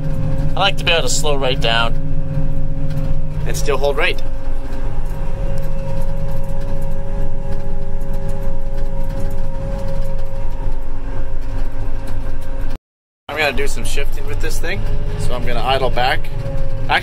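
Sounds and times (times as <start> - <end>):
constant high whine: 0.0 - 17.0
diesel engine droning: 0.0 - 17.0.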